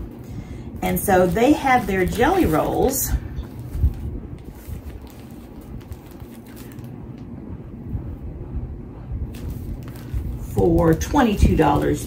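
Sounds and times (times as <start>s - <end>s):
faint rustles: 0.0s - 7.2s
plastic-wrapped packs handled: 0.0s - 7.3s, 9.3s - 12.0s.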